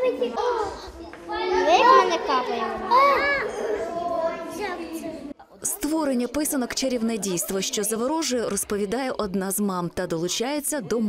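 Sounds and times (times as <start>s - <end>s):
children exclaiming: 0.0s - 5.3s
children chattering: 0.0s - 9.8s.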